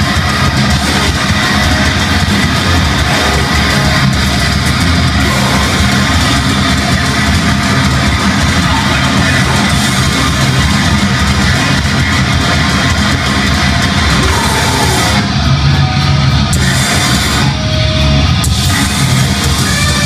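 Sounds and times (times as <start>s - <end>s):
bass: 0.0s - 20.0s
distorted electric guitars: 0.0s - 20.0s
drums: 0.0s - 20.0s.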